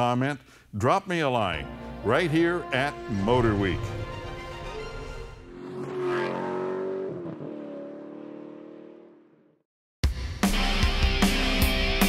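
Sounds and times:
car engine revving: 0:03.1 - 0:09.5.

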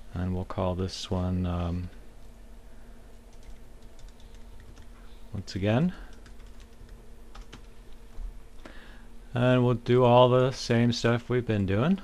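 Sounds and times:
computer keyboard typing: 0:03.3 - 0:04.9, 0:06.0 - 0:07.7.

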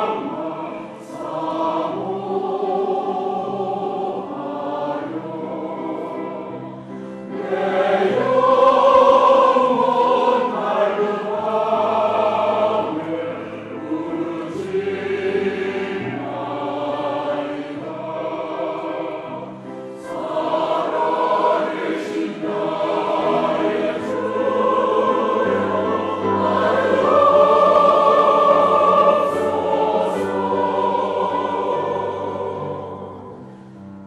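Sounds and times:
church choir singing: 0:00.0 - 0:34.0.

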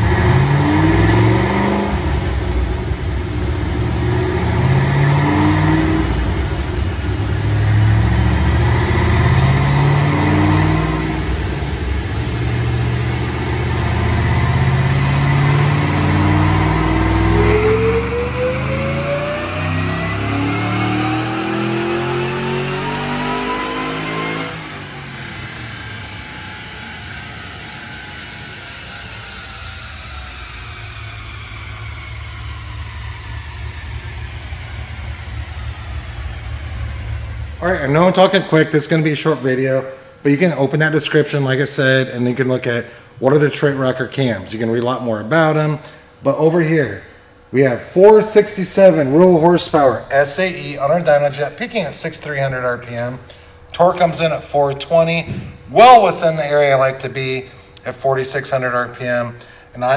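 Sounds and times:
car engine revving on a dyno: 0:00.0 - 0:44.6, 0:46.9 - 0:59.9.

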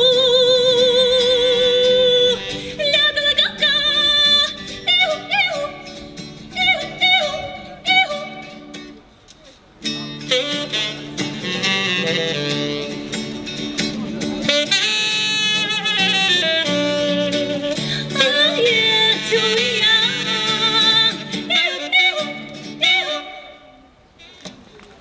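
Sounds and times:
saxophone: 0:00.0 - 0:08.8, 0:10.2 - 0:24.6
woman singing folk song: 0:00.0 - 0:08.9, 0:17.4 - 0:23.8
acoustic guitar: 0:00.0 - 0:24.7.

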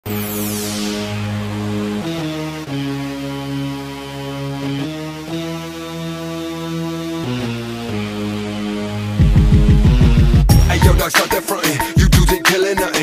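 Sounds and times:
sustained synthesizer chords: 0:00.1 - 0:11.1.

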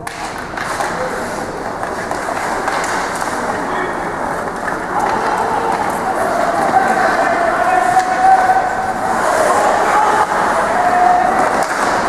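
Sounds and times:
rushing noise from ice rink: 0:00.6 - 0:12.0.

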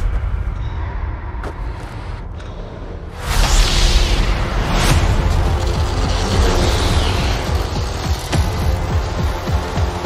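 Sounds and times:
cinematic trailer music: 0:00.0 - 0:10.0.

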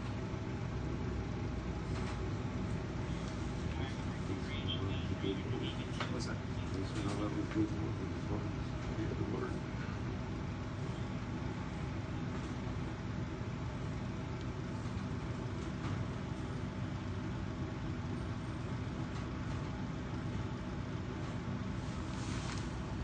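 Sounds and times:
low rumble with constant hum: 0:00.0 - 0:23.0.

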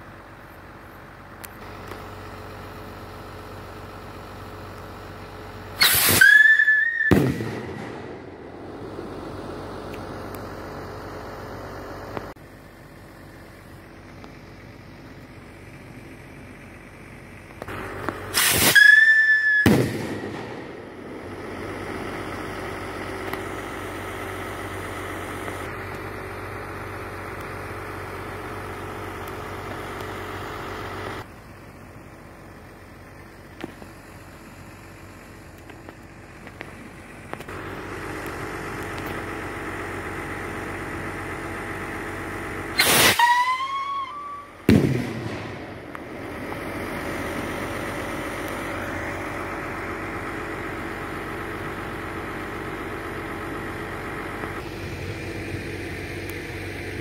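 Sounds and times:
rocket motor shrill whistle: 0:05.8 - 0:07.8, 0:18.3 - 0:20.3, 0:42.8 - 0:44.7.

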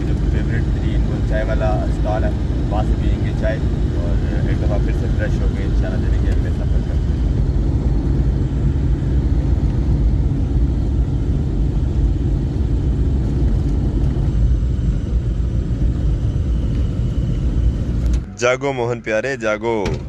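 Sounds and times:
van engine and tyres on road: 0:00.0 - 0:20.0.

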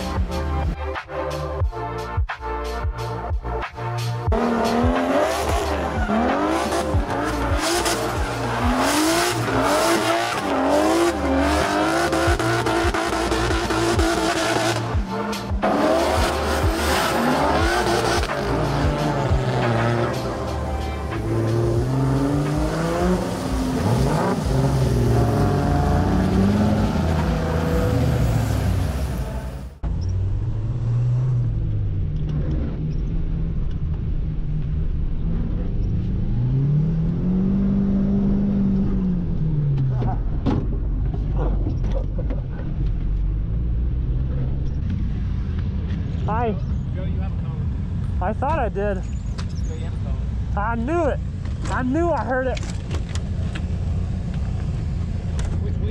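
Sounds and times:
car engines revving: 0:03.0 - 0:55.9
engine revving inside car cabin: 0:04.2 - 0:33.1.

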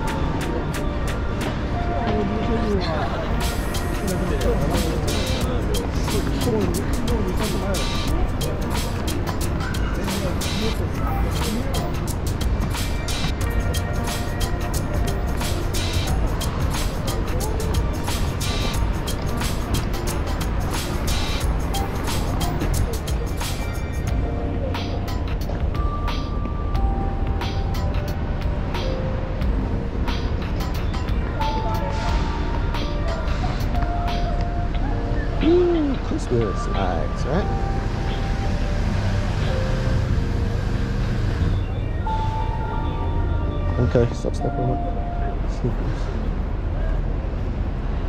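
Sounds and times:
faint music: 0:00.0 - 0:48.0
road traffic rumble: 0:00.0 - 0:48.0.

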